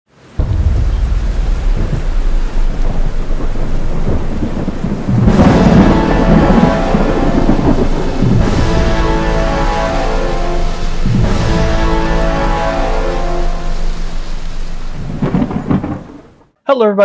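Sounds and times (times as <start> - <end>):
steady rain: 0.1 - 16.6
thunder rumbling: 0.2 - 16.5.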